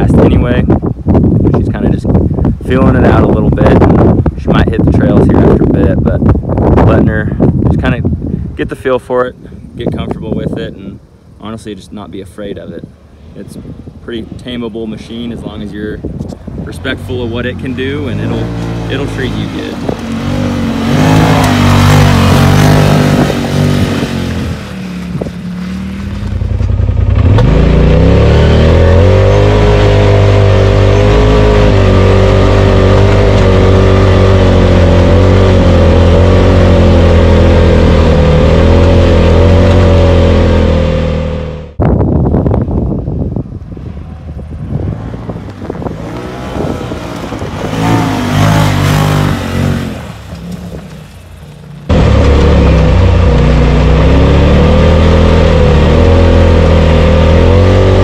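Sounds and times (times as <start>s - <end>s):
off-road vehicle engine revving: 14.6s - 41.8s, 43.8s - 58.0s.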